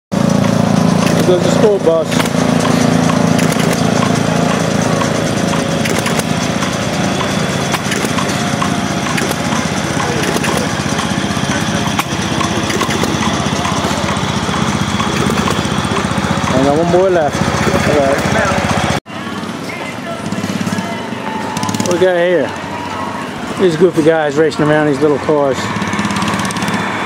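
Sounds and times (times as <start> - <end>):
small engines running: 0.1 - 27.0
light regular ticking: 2.1 - 16.7.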